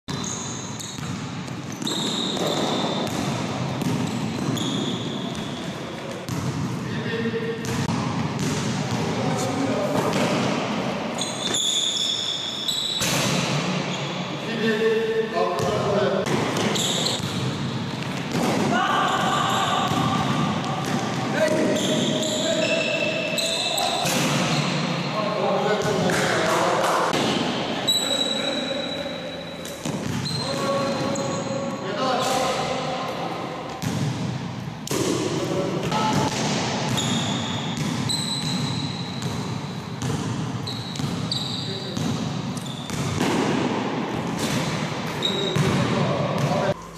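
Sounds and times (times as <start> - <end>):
sneaker squeaks: 0.1 - 10.5, 11.1 - 14.4, 15.6 - 33.1, 36.9 - 43.5, 44.3 - 46.9
basketballs bouncing in hall: 0.1 - 46.9
players' voices: 4.4 - 11.1, 14.0 - 33.8.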